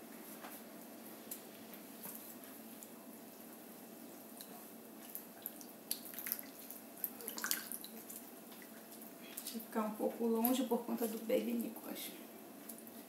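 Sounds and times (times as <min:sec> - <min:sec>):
juice dripping into bowl: 0:04.3 - 0:09.6.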